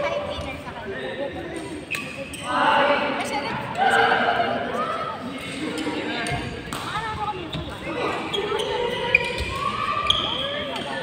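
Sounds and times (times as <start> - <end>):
indistinct voices talking: 0.0 - 11.0
shoes squeaking on court: 1.8 - 2.5, 7.3 - 11.0.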